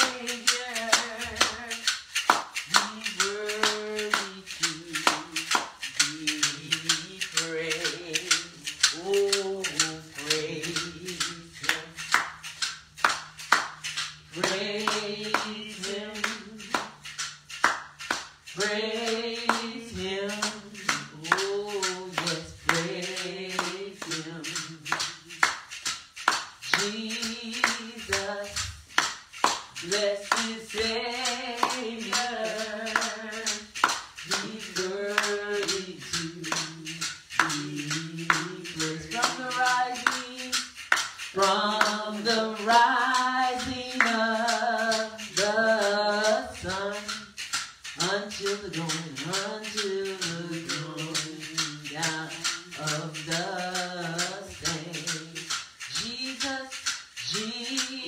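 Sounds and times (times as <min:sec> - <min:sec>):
hand clapping on the beat: 0:00.0 - 0:58.0
voices singing praise song: 0:00.0 - 0:58.0.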